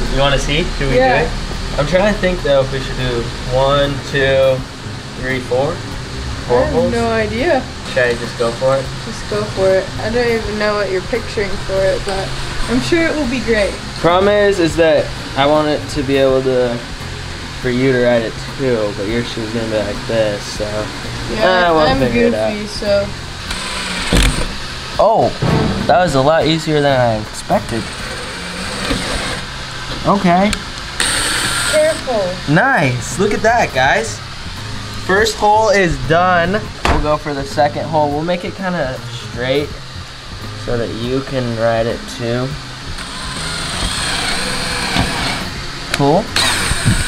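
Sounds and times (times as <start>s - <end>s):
cordless drill boring: 23.4s - 24.5s, 27.7s - 29.5s, 31.0s - 32.0s, 43.0s - 45.5s, 46.4s - 47.0s.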